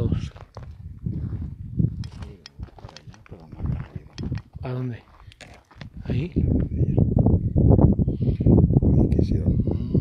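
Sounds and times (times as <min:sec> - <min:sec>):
footsteps on stony ground: 0:00.0 - 0:06.8
stones clicking underfoot: 0:00.2 - 0:06.0.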